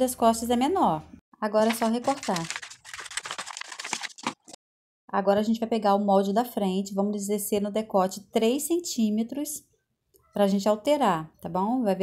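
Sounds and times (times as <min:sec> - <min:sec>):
scissors snipping paper: 0:01.6 - 0:04.6.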